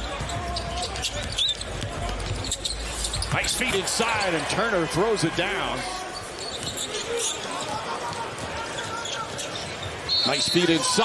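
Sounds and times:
arena crowd murmur: 0.0s - 11.0s
faint voices: 0.0s - 11.0s.

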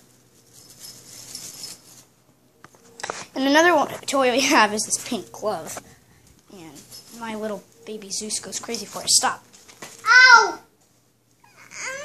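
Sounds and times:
cat toy jingling rattle: 0.2s - 2.1s, 6.5s - 7.6s.

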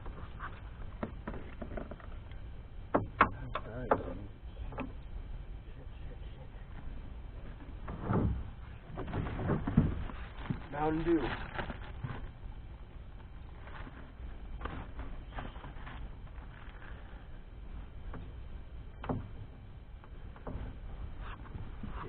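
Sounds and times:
low steady rumble: 0.0s - 22.0s.

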